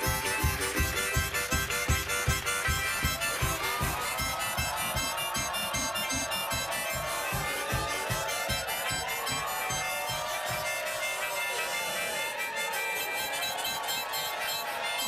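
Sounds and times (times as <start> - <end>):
steady low beat: 0.0 - 11.1
harmonicas playing wheezy chords: 0.0 - 15.0.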